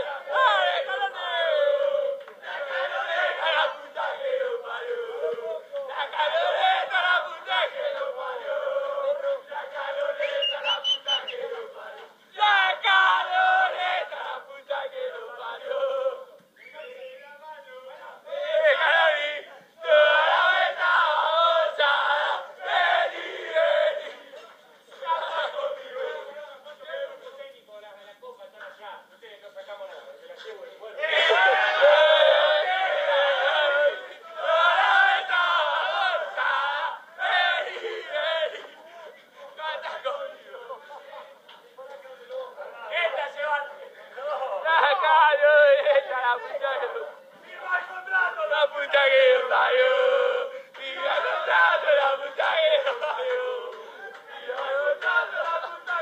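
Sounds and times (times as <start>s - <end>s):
men chanting and singing: 0.0s - 56.0s
high whistle: 10.2s - 11.4s.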